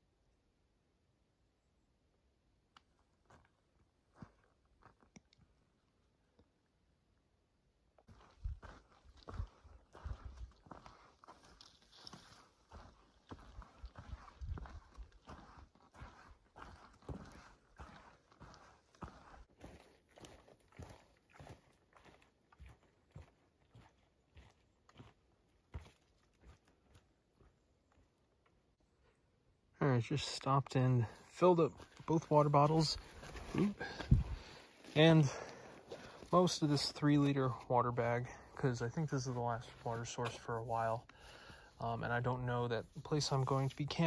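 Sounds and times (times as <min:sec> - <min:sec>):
footsteps on dirt trail: 0:02.9 - 0:05.6, 0:08.0 - 0:28.6, 0:31.0 - 0:44.0.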